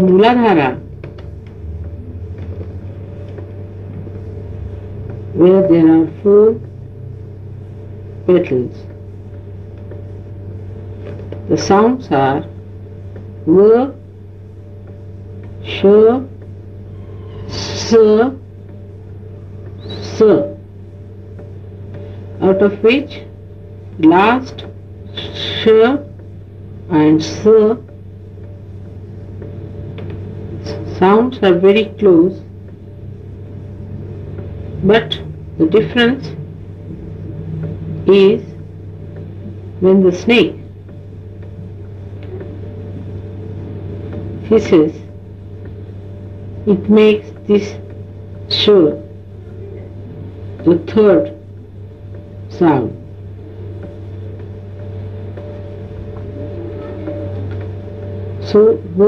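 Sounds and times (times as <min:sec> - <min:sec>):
low mains hum: 0:00.0 - 0:59.0.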